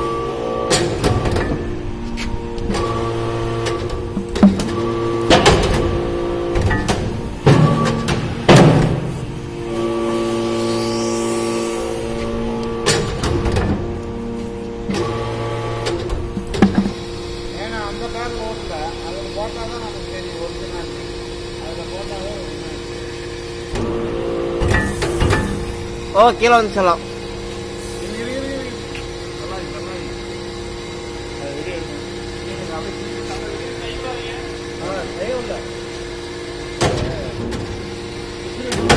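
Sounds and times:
hydraulic press humming: 0.0s - 38.9s
sharp knocks: 15.8s - 17.0s.

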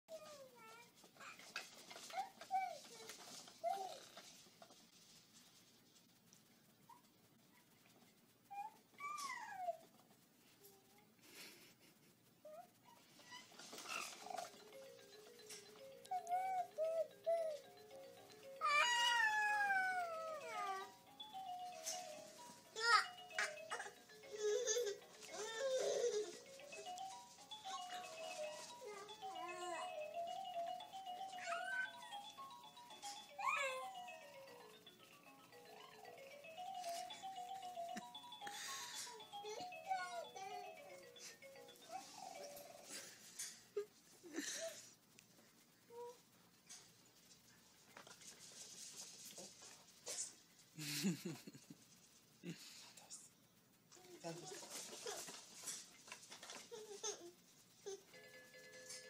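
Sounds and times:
baby cooing and squeaking: 8.5s - 10.0s, 12.5s - 21.0s, 21.8s - 34.3s, 39.1s - 43.1s, 56.5s - 58.1s.

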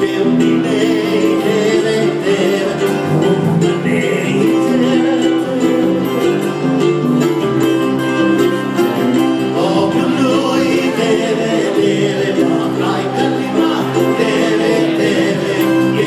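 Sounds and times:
acoustic trio playing: 0.0s - 16.0s
person singing: 0.0s - 16.0s.

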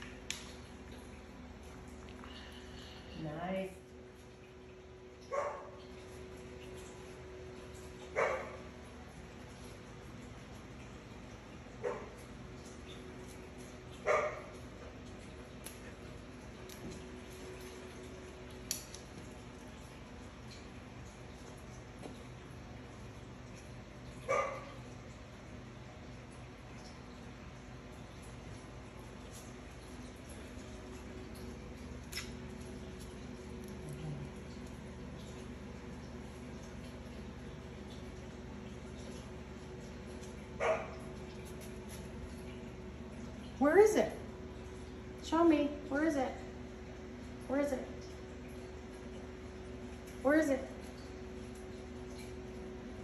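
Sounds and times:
dog barking: 5.3s - 5.8s, 8.2s - 8.6s, 11.8s - 12.1s, 14.0s - 14.5s, 24.3s - 24.8s, 40.6s - 41.0s.

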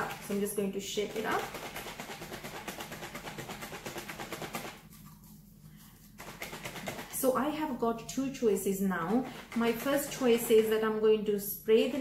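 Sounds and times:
liquid sloshing in shaken spray bottle: 0.0s - 7.8s, 8.4s - 10.9s.

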